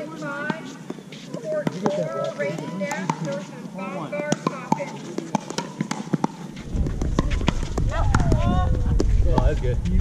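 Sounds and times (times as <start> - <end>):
paddles striking balls: 0.0 - 9.7
balls bouncing on hard court: 0.0 - 9.8
low rumble: 6.6 - 10.0.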